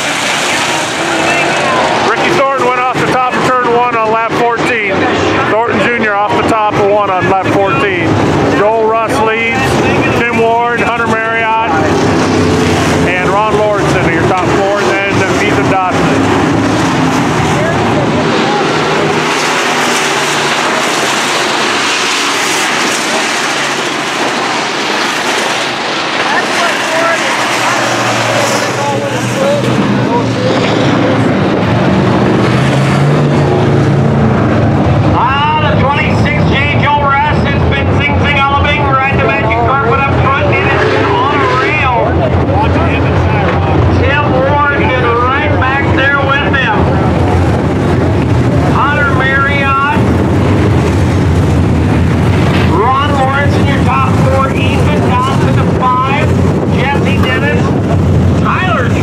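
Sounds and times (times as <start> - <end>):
race car engines roaring: 0.0 - 59.0
man announcing over loudspeaker: 1.0 - 12.3, 12.9 - 16.4, 17.2 - 19.0, 26.1 - 31.6, 35.0 - 47.6, 48.5 - 50.2, 52.5 - 59.0.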